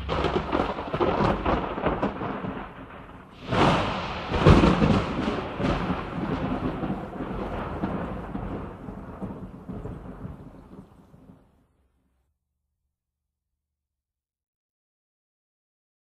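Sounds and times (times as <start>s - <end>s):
rumbling crackling noise: 0.0s - 11.8s.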